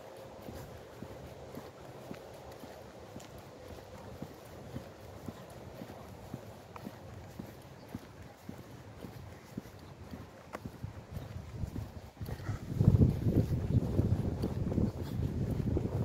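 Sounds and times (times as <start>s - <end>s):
footsteps on asphalt: 0.0s - 16.0s.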